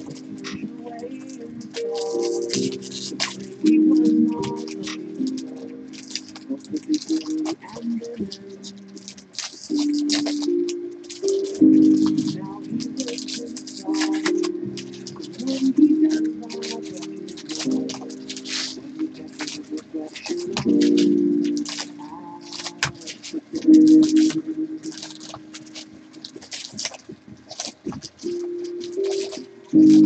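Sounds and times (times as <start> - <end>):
background music with low notes: 0.0 - 30.0
foil wrappers crinkling: 0.0 - 30.0.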